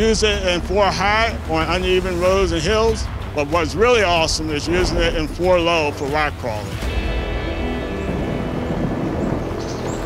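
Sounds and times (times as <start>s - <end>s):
truck engine driving off-road: 0.0s - 10.0s.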